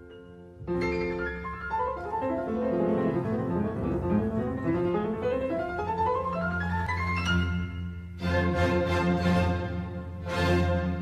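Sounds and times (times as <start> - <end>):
classical piano run: 0.0 - 11.0.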